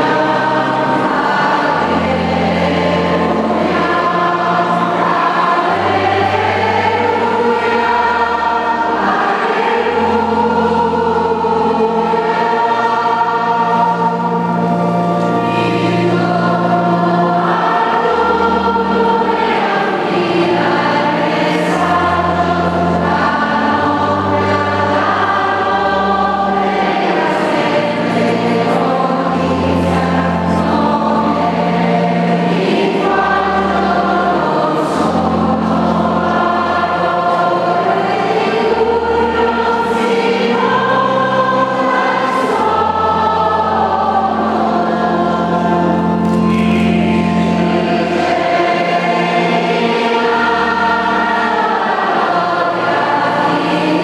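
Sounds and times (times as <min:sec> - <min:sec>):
church choir singing a hymn: 0:00.0 - 0:54.0
sustained instrumental bass notes: 0:00.0 - 0:54.0.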